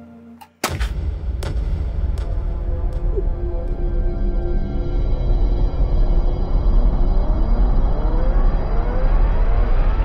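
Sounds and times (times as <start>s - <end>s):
tense music: 0.0s - 10.0s
deep boom: 0.7s - 5.9s
sustained low rumble: 1.0s - 10.0s.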